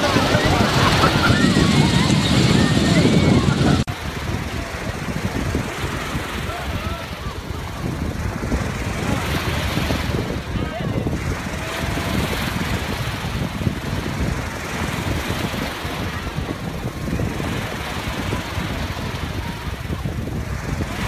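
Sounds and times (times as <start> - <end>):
sea surf washing: 0.0 - 21.0
wind buffeting microphone: 0.0 - 21.0.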